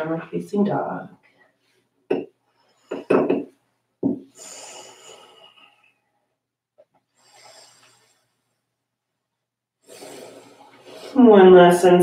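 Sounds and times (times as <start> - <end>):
soft slow breath: 4.3 - 6.4, 7.1 - 8.8, 9.8 - 11.2.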